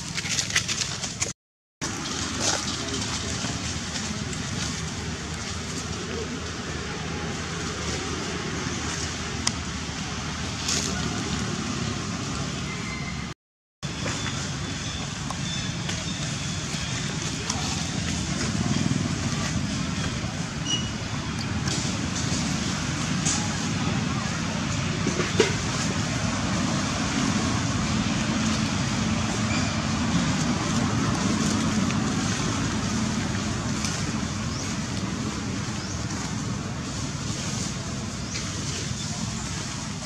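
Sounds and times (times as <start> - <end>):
low outdoor rumble: 0.0 - 40.0.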